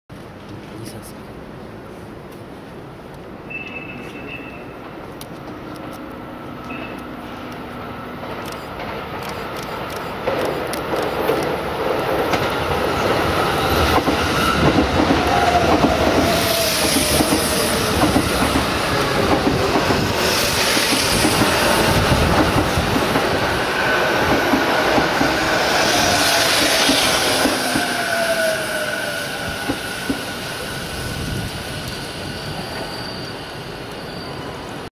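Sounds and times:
electric train rail noise: 1.4 - 34.9
high brake squeal: 3.5 - 4.8, 27.7 - 34.9
train brake whine: 13.5 - 19.3, 25.5 - 34.9.

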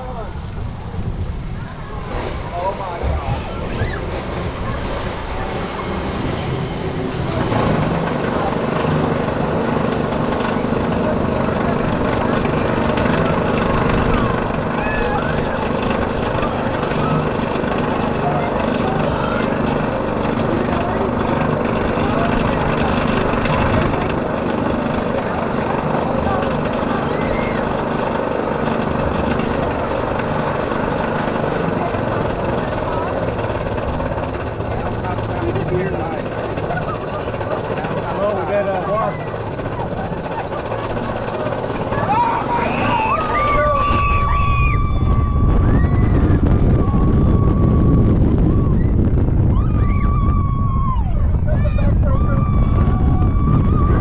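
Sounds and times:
roller coaster lift chain clatter: 0.0 - 54.0.

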